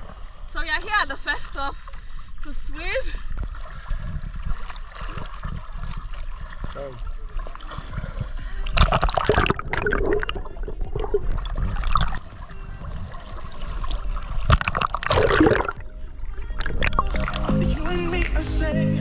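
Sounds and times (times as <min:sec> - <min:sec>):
seawater splashing and sloshing: 0:00.0 - 0:17.9
music: 0:15.8 - 0:19.0.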